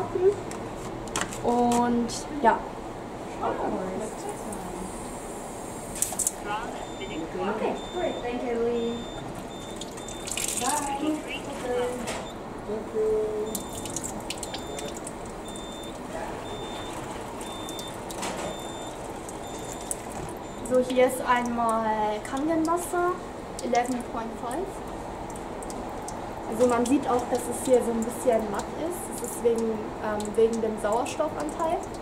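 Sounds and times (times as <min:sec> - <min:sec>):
water running into plastic cup: 0:09.6 - 0:11.2.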